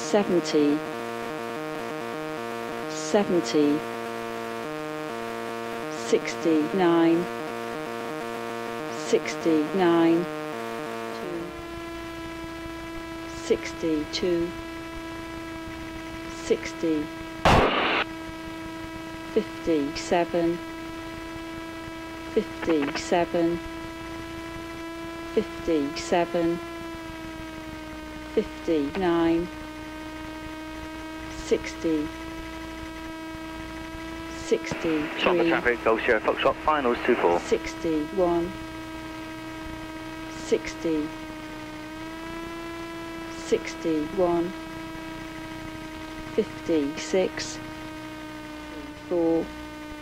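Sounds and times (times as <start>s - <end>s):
electrical hum: 0.0s - 50.0s
evenly spaced intercom tones: 5.7s - 15.4s, 16.2s - 18.1s, 19.3s - 20.8s, 22.1s - 26.9s, 27.5s - 32.3s, 34.2s - 38.7s, 40.0s - 50.0s.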